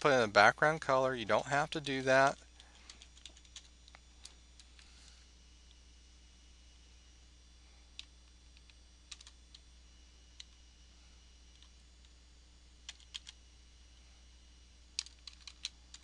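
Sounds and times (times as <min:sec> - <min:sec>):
low steady hum: 0:00.0 - 0:16.0
keyboard keystrokes: 0:09.1 - 0:09.4, 0:12.9 - 0:13.4, 0:15.0 - 0:16.0.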